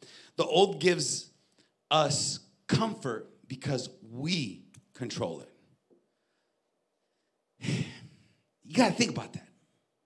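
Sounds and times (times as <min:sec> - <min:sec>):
man speaking: 0:00.4 - 0:05.6, 0:08.6 - 0:09.6
man sighing: 0:07.6 - 0:08.3.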